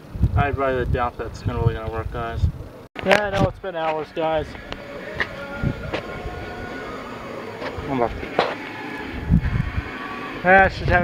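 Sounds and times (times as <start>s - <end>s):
thin high whine: 3.6s - 11.0s.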